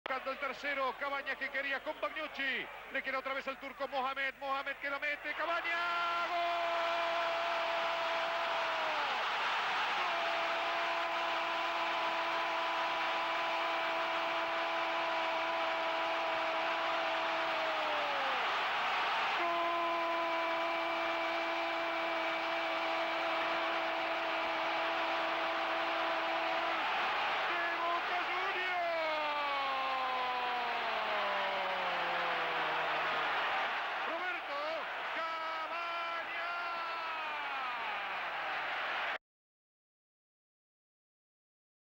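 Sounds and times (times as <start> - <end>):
stadium crowd cheering: 0.1 - 39.2
commentator's drawn-out goal cry: 19.2 - 33.0, 34.0 - 37.9.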